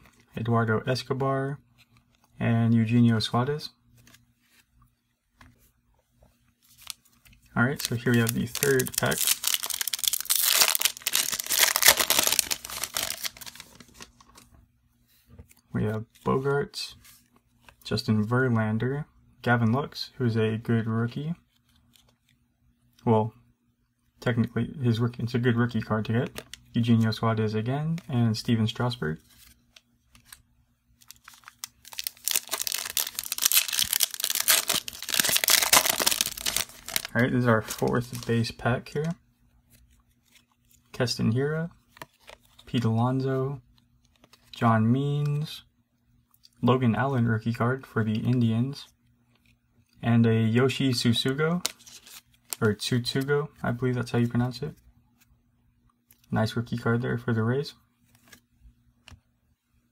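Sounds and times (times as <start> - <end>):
foil wrapper tearing and crinkling: 7.8 - 14.1, 31.0 - 38.3.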